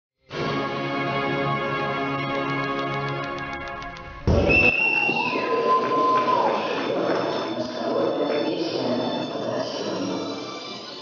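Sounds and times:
thump: 4.2s - 4.7s
long sliding whistles: 4.4s - 6.8s.

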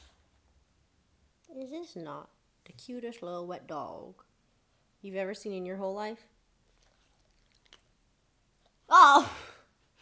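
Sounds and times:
woman exclaiming in disgust: 8.9s - 9.5s.

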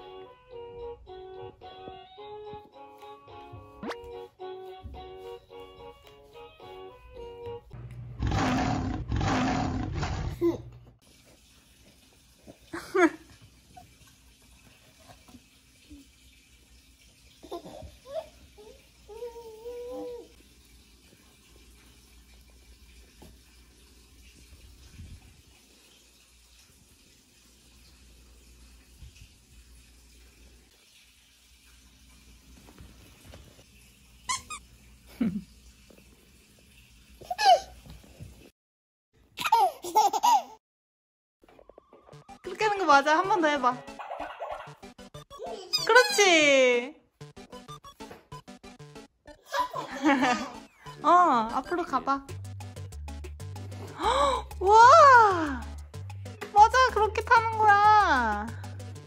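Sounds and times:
soft plucked background music: 0.0s - 7.8s, 41.6s - 46.4s, 47.2s - 59.0s
loud rough noise: 8.2s - 10.3s
toddler squealing and babbling: 17.6s - 20.3s, 37.3s - 37.8s, 45.4s - 46.2s.

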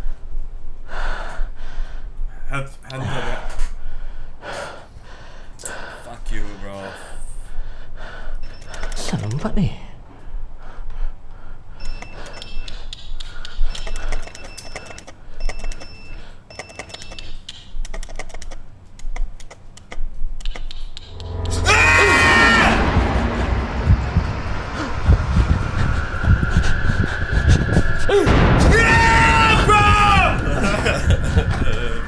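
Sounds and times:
steady high tone: 21.0s - 32.0s
loud jump-scare sting: 21.1s - 32.0s.

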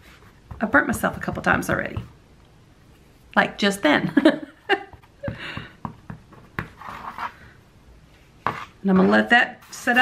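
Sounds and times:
woman laughing: 4.0s - 5.6s.

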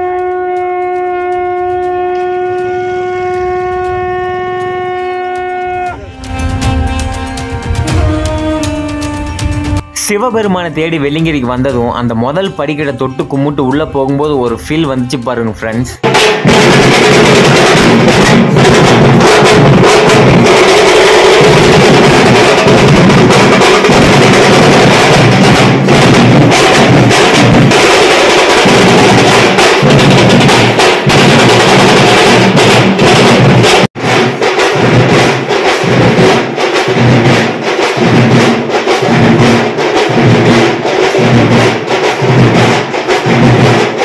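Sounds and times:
brass horn long note: 0.0s - 10.2s
drums beaten in fast rhythm: 0.0s - 44.0s.

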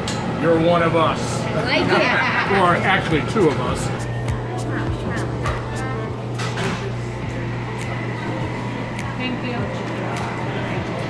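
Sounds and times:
indistinct voices of diners: 0.0s - 11.0s
steady low hum: 0.0s - 11.0s.

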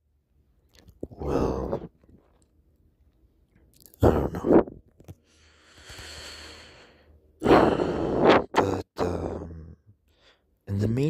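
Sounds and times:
person sighing: 1.0s - 1.9s, 3.9s - 4.6s, 5.6s - 9.7s
person breathing out: 5.2s - 8.5s.

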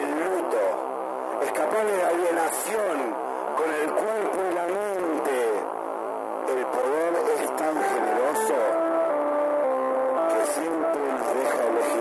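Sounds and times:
amplified voice sliding in pitch: 7.8s - 12.0s
music with held notes: 7.8s - 12.0s.

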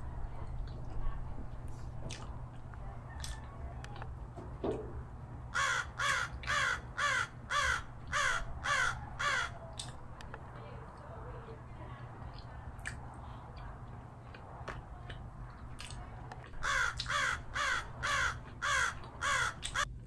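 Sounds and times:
low steady hum: 0.0s - 20.0s
bird calling: 5.6s - 10.0s, 16.6s - 19.9s.

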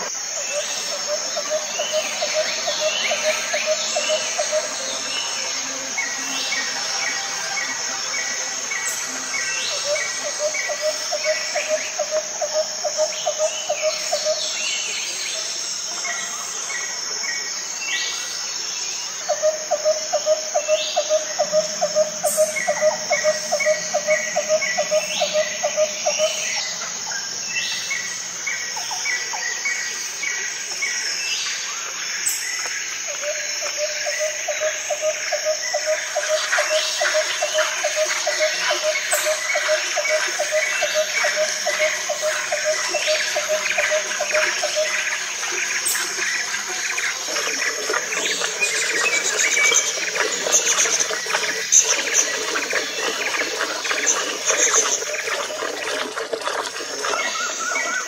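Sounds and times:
high insect drone: 0.0s - 58.0s.

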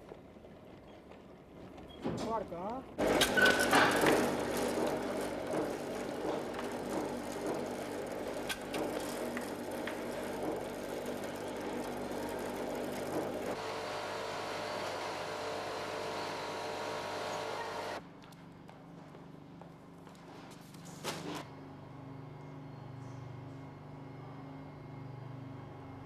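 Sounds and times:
production line machinery humming: 2.6s - 18.0s
machine hum with high whine: 3.0s - 26.0s.

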